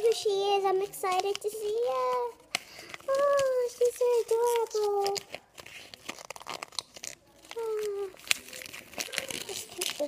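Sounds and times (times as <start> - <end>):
packaging wrapper crinkling: 0.0 - 10.0
child's vocal sound: 7.6 - 8.2.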